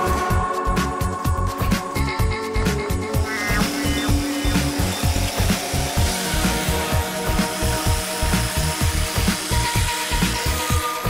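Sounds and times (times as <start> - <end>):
background music with steady beat: 0.0 - 11.0
jigsaw rasping through board: 3.6 - 11.0.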